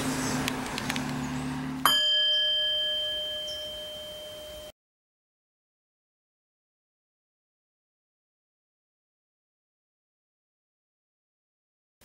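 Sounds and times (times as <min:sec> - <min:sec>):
bell-like chime ringing: 0:01.8 - 0:04.8.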